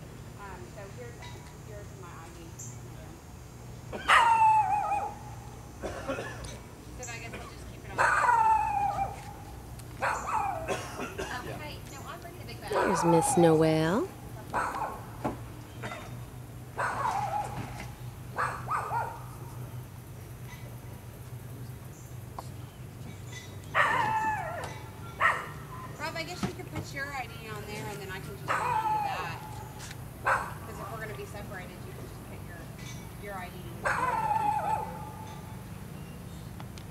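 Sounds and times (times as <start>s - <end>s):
small dog whine-howling: 4.1s - 5.2s, 8.0s - 9.2s, 23.8s - 26.0s, 33.9s - 35.2s.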